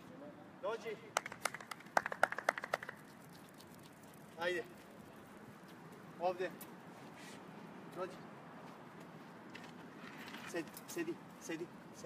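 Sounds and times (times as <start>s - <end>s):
people clapping: 1.1s - 3.1s.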